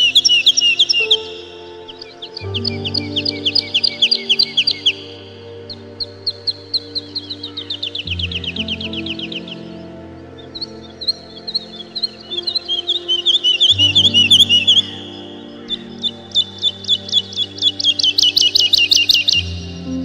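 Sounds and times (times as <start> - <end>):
birds chirping: 0.0 - 20.0
low held music chords: 0.0 - 20.0.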